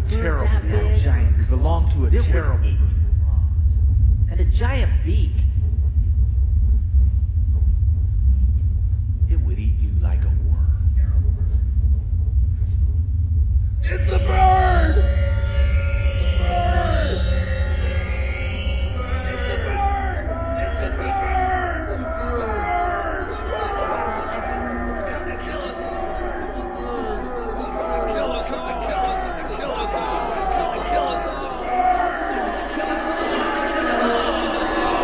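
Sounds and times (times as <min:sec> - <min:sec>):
deep electronic music rumble: 0:00.0 - 0:35.0
sliding voice-like tones: 0:13.8 - 0:24.8
person speaking: 0:13.8 - 0:29.6.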